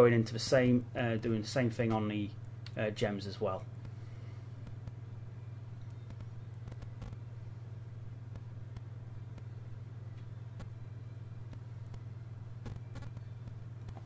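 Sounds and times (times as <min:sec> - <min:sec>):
steady low hum: 0:00.0 - 0:14.0
faint clicks and taps: 0:05.8 - 0:07.2, 0:11.5 - 0:14.0.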